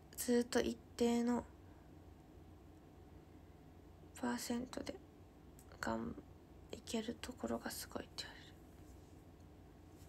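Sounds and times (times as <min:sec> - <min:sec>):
woman whispering softly: 0:06.8 - 0:08.6.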